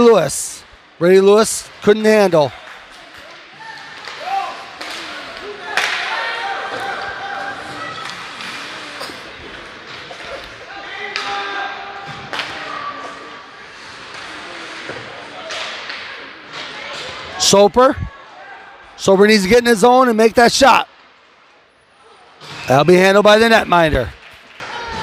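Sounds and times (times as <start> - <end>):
spectators shouting in arena: 3.5 - 9.0.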